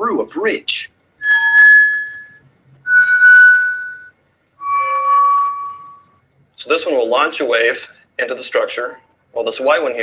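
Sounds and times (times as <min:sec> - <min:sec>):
electronic tones stepping down: 0:01.2 - 0:06.1.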